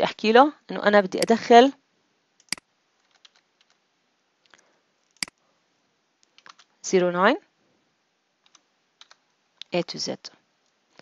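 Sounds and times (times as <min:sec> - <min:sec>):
computer keyboard keystrokes: 0:02.4 - 0:03.8, 0:06.3 - 0:06.7, 0:08.4 - 0:09.2.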